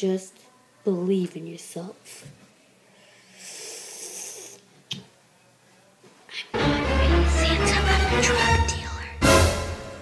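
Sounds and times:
person breathing: 0:02.1 - 0:04.7.

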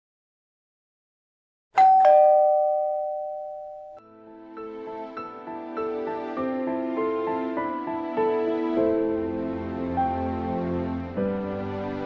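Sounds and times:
two-tone doorbell chime: 0:01.8 - 0:04.0.

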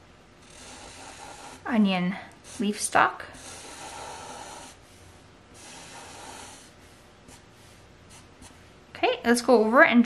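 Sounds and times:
marker scratching on paper: 0:02.5 - 0:04.8, 0:07.3 - 0:08.6.

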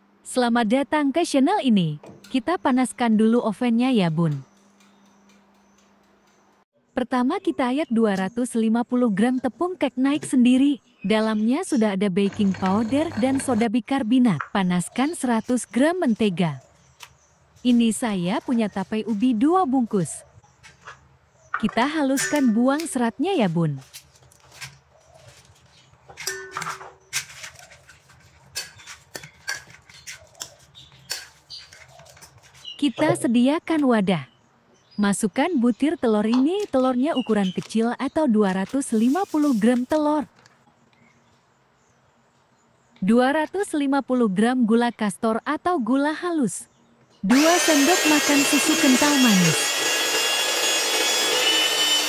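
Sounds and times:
electric hand mixer whining: 0:12.2 - 0:13.6, 0:47.3 - 0:52.0.

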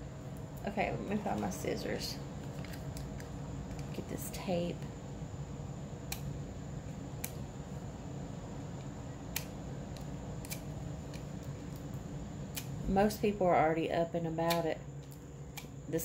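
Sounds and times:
steady low hum: 0:00.0 - 0:16.0
scissors snipping tape: 0:06.1 - 0:06.3, 0:09.3 - 0:11.3, 0:12.5 - 0:12.7, 0:14.4 - 0:15.7.

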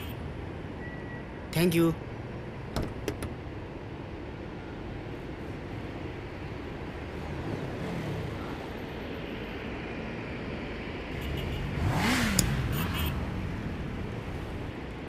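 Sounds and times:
car engine revving: 0:11.2 - 0:14.0.

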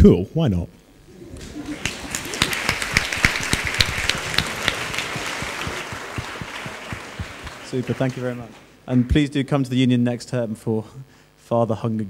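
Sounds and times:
audience applauding: 0:01.1 - 0:08.8.

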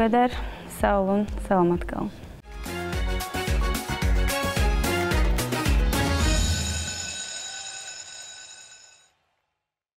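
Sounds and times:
theme music with held chord: 0:02.4 - 0:07.9.

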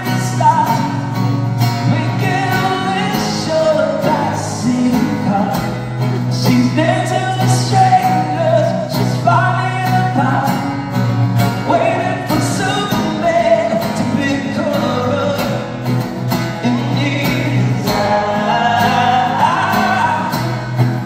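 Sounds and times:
man singing: 0:00.0 - 0:10.8, 0:11.6 - 0:21.0
strummed acoustic guitar: 0:00.0 - 0:21.0.

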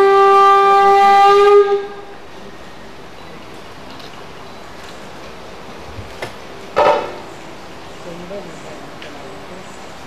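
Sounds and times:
wind instrument long note: 0:00.0 - 0:02.2.

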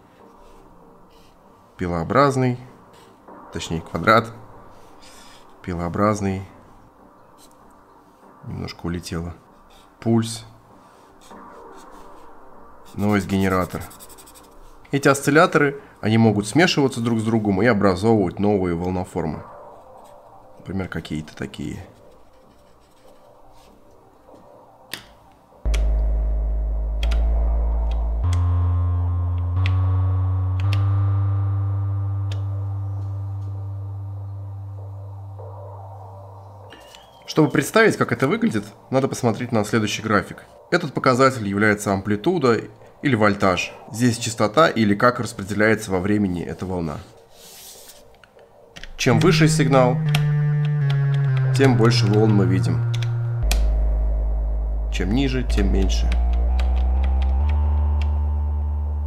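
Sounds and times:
low synthesizer notes: 0:25.7 - 0:37.0, 0:48.9 - 0:59.0
synthesizer note clicks: 0:25.7 - 0:37.1, 0:49.1 - 0:59.0.

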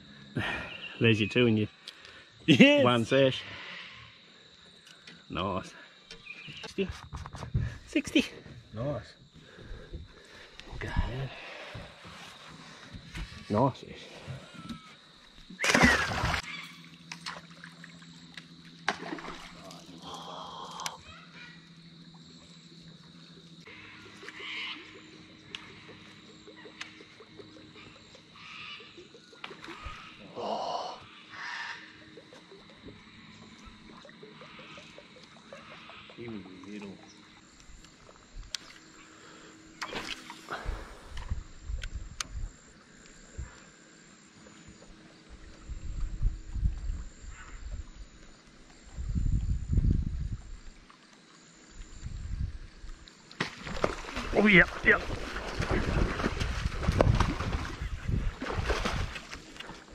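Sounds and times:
fish splashing into river: 0:15.5 - 0:18.0, 0:18.8 - 0:20.0, 0:39.8 - 0:40.8, 0:53.3 - 0:59.9.

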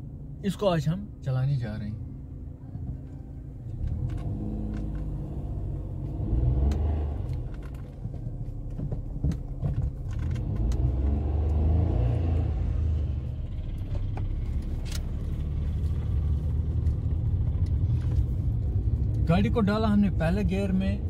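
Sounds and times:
car engine heard from cabin: 0:00.0 - 0:21.0
low road rumble: 0:00.0 - 0:21.0.

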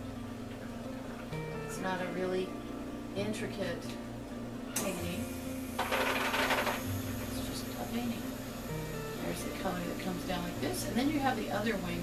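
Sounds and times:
soft background music: 0:00.0 - 0:12.0
breathy hiss: 0:04.8 - 0:12.0.

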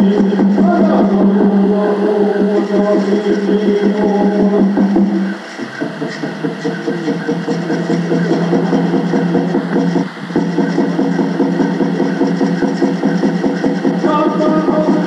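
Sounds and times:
man singing: 0:00.0 - 0:09.2, 0:14.0 - 0:15.0
water drum beating: 0:02.4 - 0:15.0.

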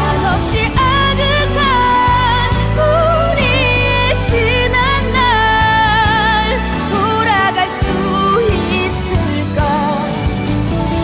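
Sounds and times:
sustained instrumental backing: 0:00.0 - 0:11.0.

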